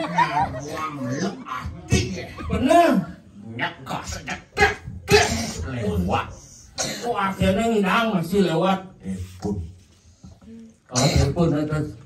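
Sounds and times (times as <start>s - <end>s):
man making throat-clearing noises: 4.6s - 5.8s, 10.9s - 11.4s.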